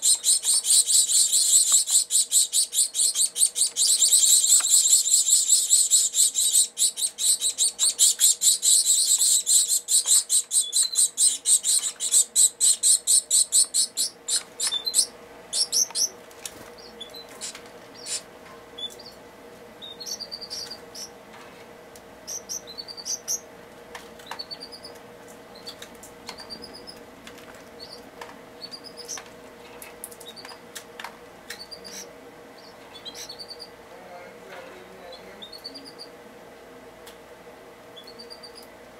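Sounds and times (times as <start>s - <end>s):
finch chicks begging calls: 0.0s - 16.2s, 16.8s - 19.2s, 19.8s - 21.1s, 22.2s - 23.5s, 24.2s - 25.8s, 31.6s - 33.8s
faint steady hum: 0.0s - 38.9s.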